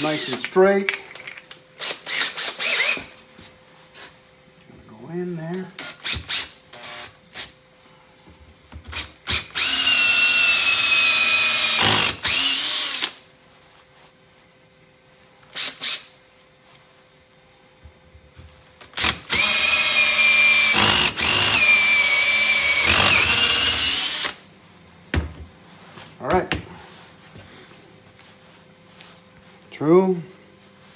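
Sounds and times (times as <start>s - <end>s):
cordless drill whining: 2.1s - 3.1s, 8.9s - 13.2s, 18.9s - 24.4s.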